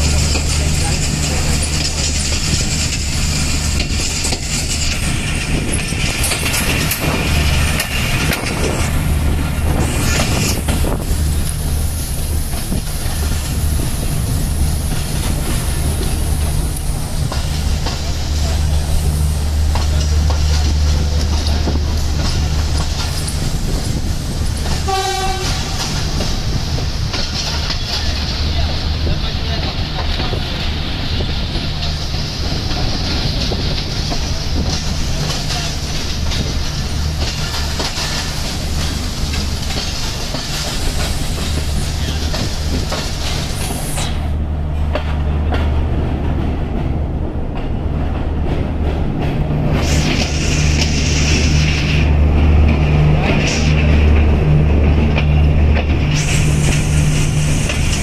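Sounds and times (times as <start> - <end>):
train carriage rumble: 0.0 - 58.0
train horn toot: 24.7 - 25.9.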